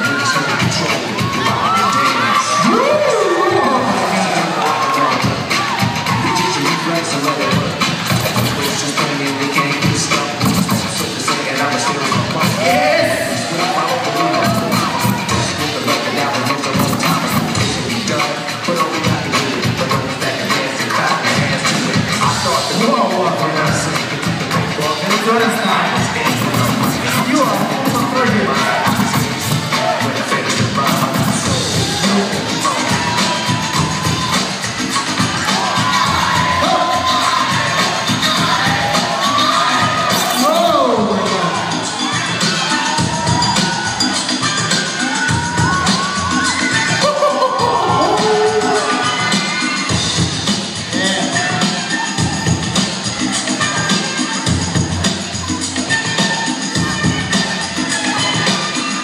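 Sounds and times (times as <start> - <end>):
children cheering and shouting: 0.0 - 10.5, 11.2 - 59.0
music over loudspeakers: 0.0 - 59.0.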